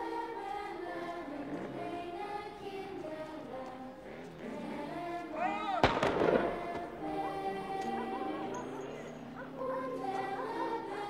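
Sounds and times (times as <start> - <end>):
soft choral film music: 0.0 - 11.0
gunshot with echo: 5.8 - 6.8.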